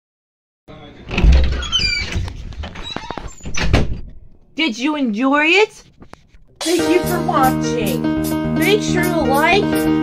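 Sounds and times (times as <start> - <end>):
microphone rubbing and bumping: 1.1 - 4.4, 5.8 - 6.6.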